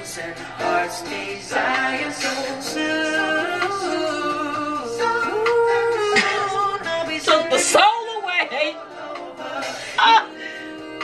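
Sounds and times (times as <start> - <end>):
woman singing soul ballad: 2.2 - 11.0.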